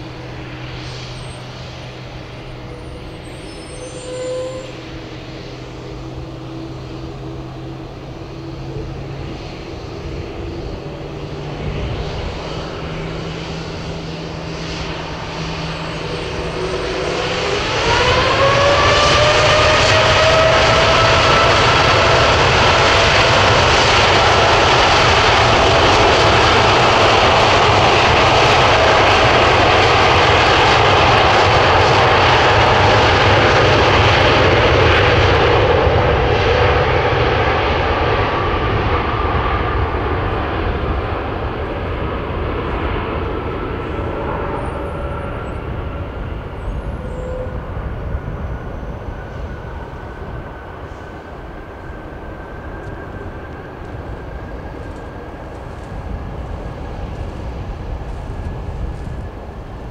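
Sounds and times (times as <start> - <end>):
jet engines spooling up: 0.0 - 59.9.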